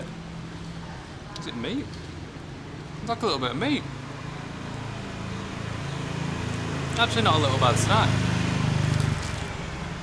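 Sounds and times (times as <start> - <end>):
vehicle engine passing by: 3.9 - 10.0.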